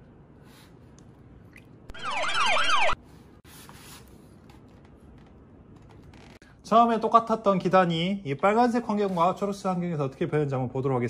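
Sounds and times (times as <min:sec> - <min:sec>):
siren whooping: 0:01.9 - 0:03.0.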